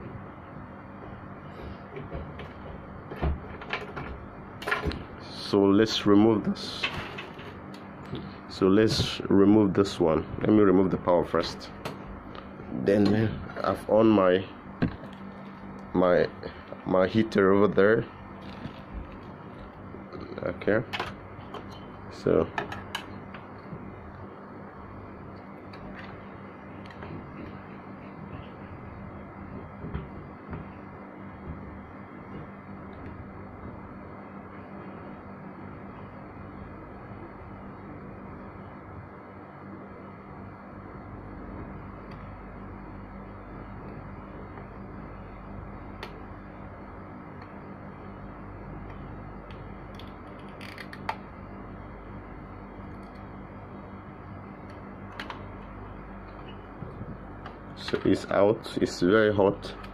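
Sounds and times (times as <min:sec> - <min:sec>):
hot-air blower airflow: 0:00.0 - 0:59.9.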